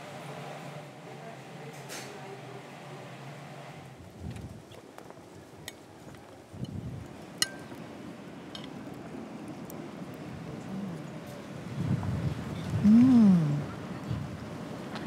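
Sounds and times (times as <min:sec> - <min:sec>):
wind gusts on microphone: 0:04.0 - 0:04.8, 0:05.4 - 0:07.3, 0:09.1 - 0:15.0.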